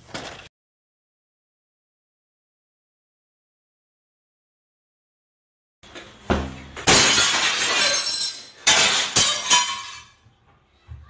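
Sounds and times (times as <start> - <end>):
falling glass crashing: 6.4 - 10.2
glass shattering: 6.4 - 10.2.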